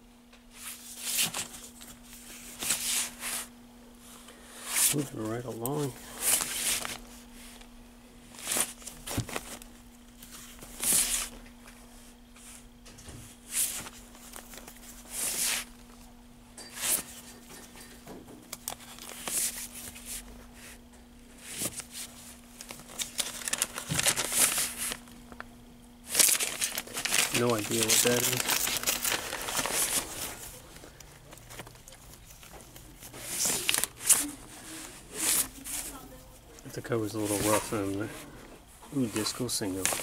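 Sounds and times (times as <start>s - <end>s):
steady low hum: 0.0s - 40.0s
record sleeves rustling: 0.5s - 12.7s, 13.3s - 16.1s, 16.7s - 17.8s, 18.5s - 40.0s.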